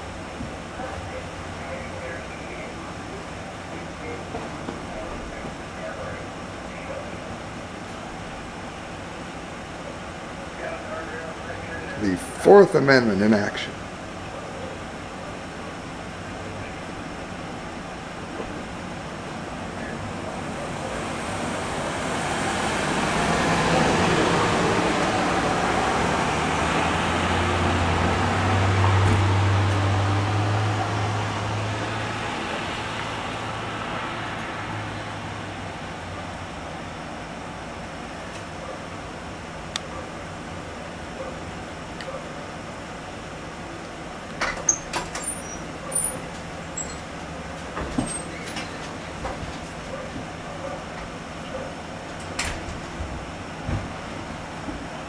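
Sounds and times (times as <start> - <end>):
vehicle passing on road: 0.0 - 55.0.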